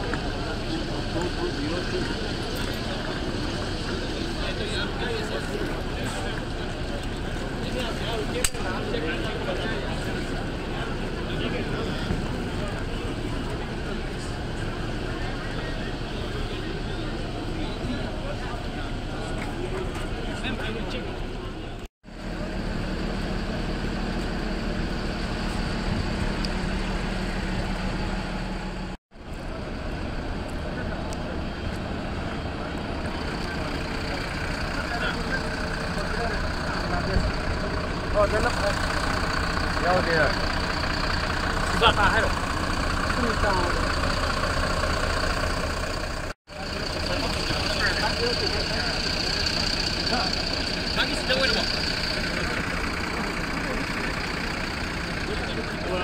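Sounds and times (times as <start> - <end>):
many people talking: 0.0 - 27.0, 29.3 - 56.0
coach engines idling: 0.0 - 56.0.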